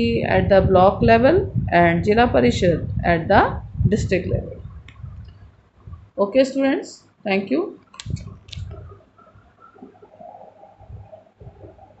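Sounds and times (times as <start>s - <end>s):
dove cooing: 8.8s - 12.0s.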